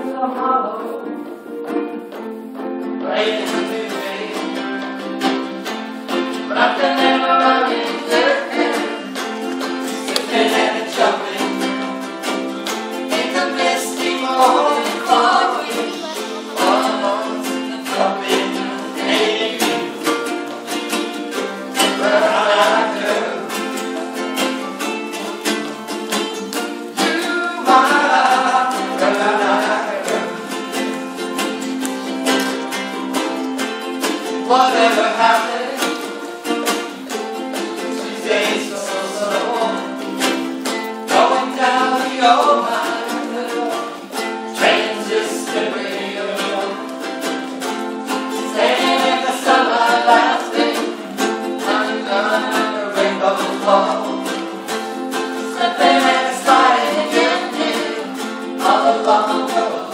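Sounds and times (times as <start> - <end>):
ukuleles strumming chords: 0.0 - 59.9
people singing: 2.8 - 59.9.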